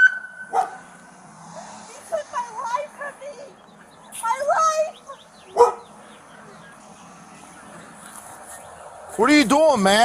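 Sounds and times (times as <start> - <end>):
siren wailing: 0.0 - 0.6
dog barking: 0.5 - 0.9, 5.5 - 5.9.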